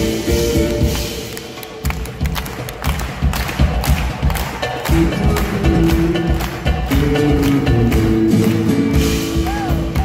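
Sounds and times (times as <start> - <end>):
live band with nylon-string guitar: 0.0 - 10.0.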